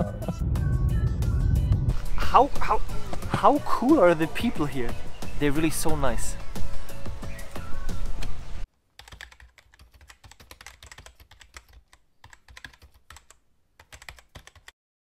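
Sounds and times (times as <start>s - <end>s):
music: 0.0s - 8.6s
computer keyboard typing: 9.0s - 14.8s.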